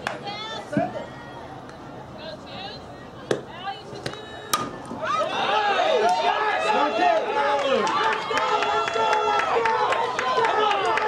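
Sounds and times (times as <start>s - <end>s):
spectators shouting and cheering: 4.7s - 11.0s.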